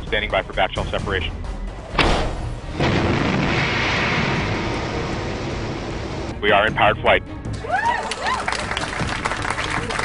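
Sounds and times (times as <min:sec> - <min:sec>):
music: 0:00.0 - 0:10.0
sudden bang: 0:01.9 - 0:06.4.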